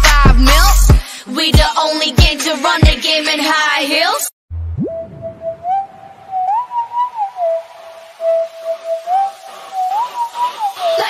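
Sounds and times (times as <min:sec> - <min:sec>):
whistle-like tone playing a tune: 0:04.8 - 0:11.0.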